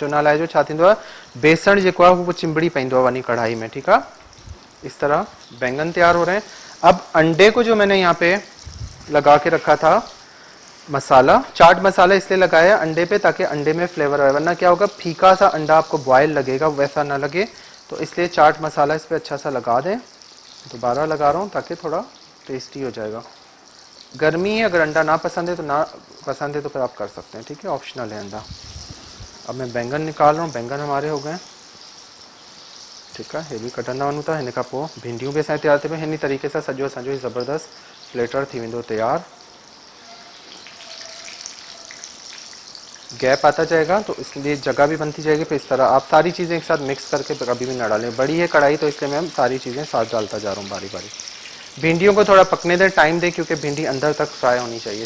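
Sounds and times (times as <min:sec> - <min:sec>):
man talking: 0:00.0 - 0:04.2, 0:04.8 - 0:10.2, 0:10.9 - 0:20.1, 0:20.7 - 0:23.3, 0:24.2 - 0:28.6, 0:29.4 - 0:31.4, 0:33.2 - 0:39.3, 0:43.1 - 0:51.1, 0:51.8 - 0:55.0
food deep-frying in hot oil: 0:00.0 - 0:55.0.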